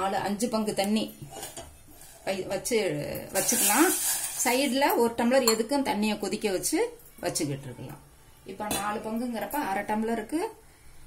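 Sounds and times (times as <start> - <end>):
metal pots clinking: 3.4 - 5.9.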